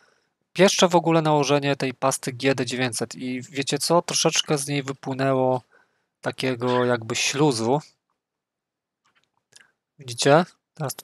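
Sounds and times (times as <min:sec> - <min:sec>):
person narrating: 0:00.6 - 0:05.6, 0:06.3 - 0:07.8, 0:10.0 - 0:11.0.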